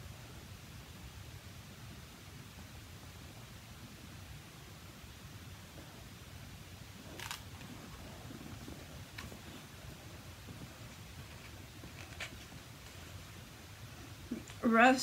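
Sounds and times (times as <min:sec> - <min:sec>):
low room noise: 0:00.0 - 0:15.0
book pages rustling: 0:07.0 - 0:13.4.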